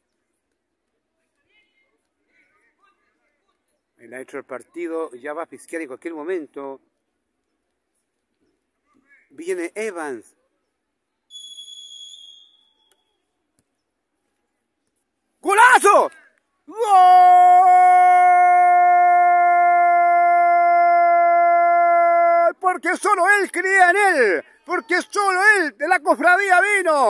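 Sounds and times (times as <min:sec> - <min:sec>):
referee's whistle: 0:11.3 - 0:13.1.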